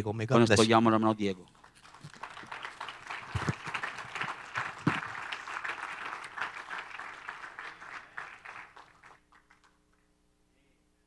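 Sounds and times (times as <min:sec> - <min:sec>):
congregation applauding: 0:01.5 - 0:10.0.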